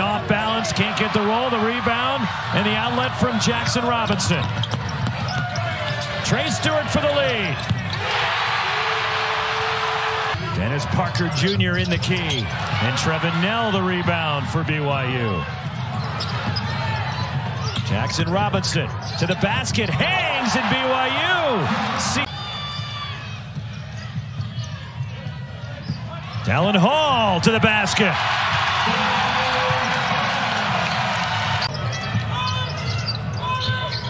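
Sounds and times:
arena crowd noise: 0:00.0 - 0:34.0
basketball dribbling on hardwood: 0:03.6 - 0:06.2
sneaker squeaks on floor: 0:03.9 - 0:06.3, 0:07.0 - 0:08.0, 0:15.6 - 0:20.0, 0:23.6 - 0:26.5, 0:31.6 - 0:34.0.

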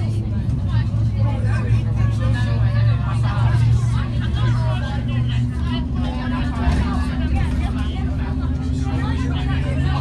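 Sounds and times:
bus engine droning: 0:00.0 - 0:10.0
indistinct passenger chatter: 0:00.0 - 0:10.0.

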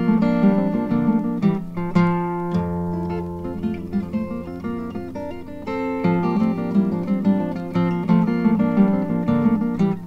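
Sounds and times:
acoustic guitar picking: 0:00.0 - 0:10.0.

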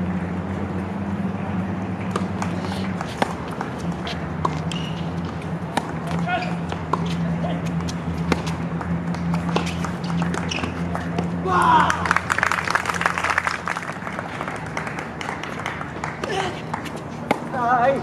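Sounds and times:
racket hitting tennis ball: 0:01.5 - 0:12.2, 0:15.1 - 0:17.8
voices: 0:05.9 - 0:08.3
spectators shouting and clapping: 0:09.8 - 0:17.0.

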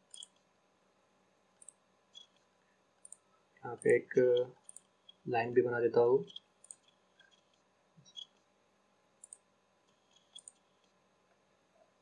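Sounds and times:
computer mouse buttons clicking: 0:03.0 - 0:03.2, 0:06.3 - 0:07.4, 0:09.2 - 0:09.4, 0:10.0 - 0:11.0.

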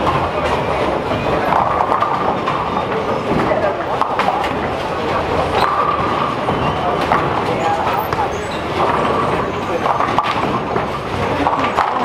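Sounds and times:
background chatter: 0:00.0 - 0:12.0
bowling balls rolling: 0:00.0 - 0:12.0
bowling pins clattering: 0:00.0 - 0:12.0.

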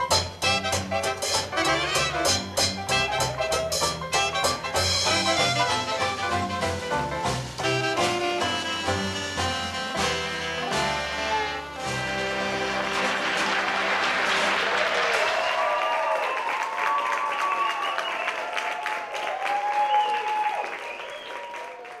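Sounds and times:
audience applauding and cheering: 0:11.8 - 0:22.0
whoops: 0:14.7 - 0:22.0.

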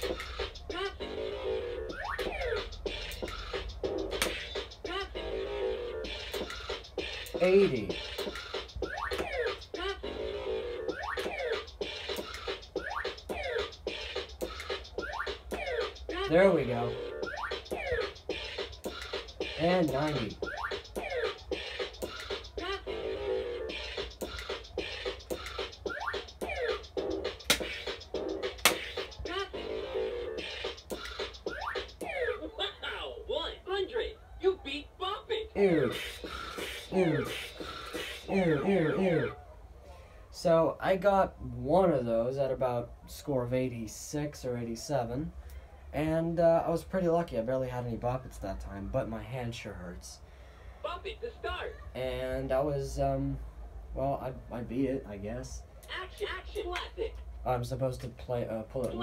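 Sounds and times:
scratch-like effects: 0:00.0 - 0:32.2, 0:35.6 - 0:39.4
swooping tone: 0:00.0 - 0:32.5, 0:35.6 - 0:39.4
electronic toy game music: 0:00.0 - 0:32.6, 0:35.7 - 0:39.4
sharp clicks: 0:02.2 - 0:04.8.

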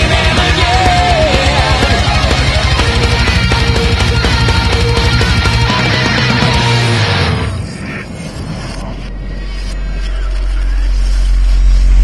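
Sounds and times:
deep rumble with low hum: 0:00.0 - 0:12.0.

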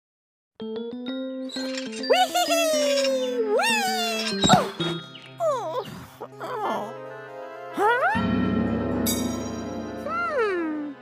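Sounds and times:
light background music: 0:00.8 - 0:11.0.

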